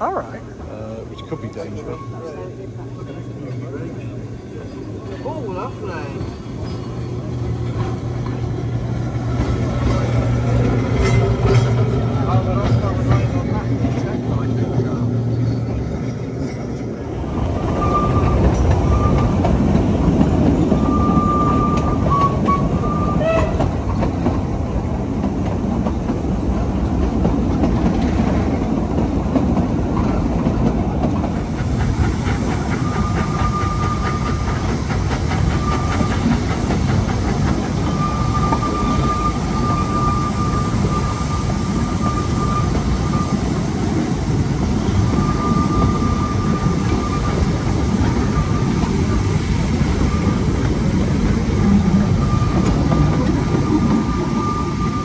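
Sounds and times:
train carriage rumble and clatter: 0.0s - 55.0s
short high wheel squeals: 17.7s - 19.4s, 20.8s - 23.6s, 32.7s - 34.7s, 35.5s - 36.4s, 37.8s - 43.6s, 44.8s - 49.3s, 51.5s - 55.0s.

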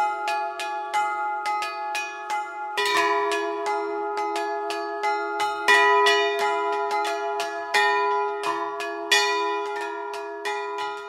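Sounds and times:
bells ringing in a peal: 0.0s - 11.0s.

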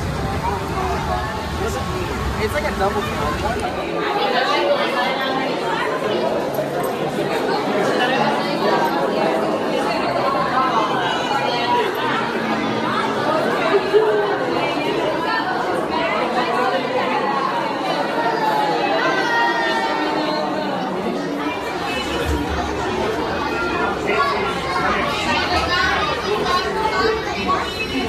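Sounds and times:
crowd chattering indoors: 0.0s - 28.0s.

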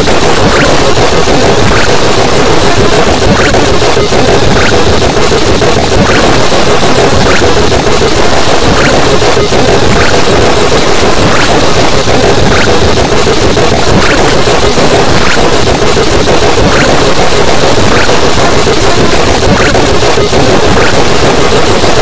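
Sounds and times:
distorted noise wall: 0.0s - 22.0s.

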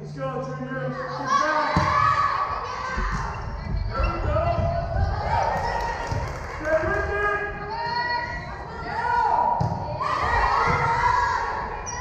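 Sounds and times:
volleyball hits echoing: 9.4s - 11.1s.

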